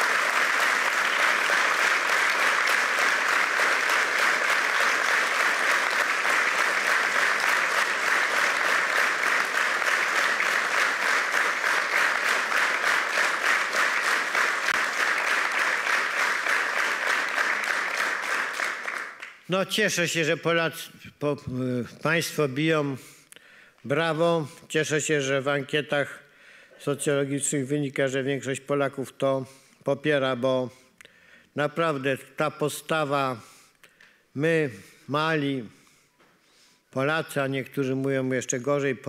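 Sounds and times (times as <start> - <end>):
audience applauding: 0.0 - 19.5.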